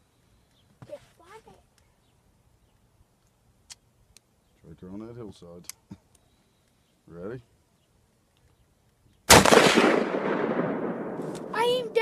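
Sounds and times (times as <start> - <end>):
rifle shot with rolling echo: 9.3 - 12.0.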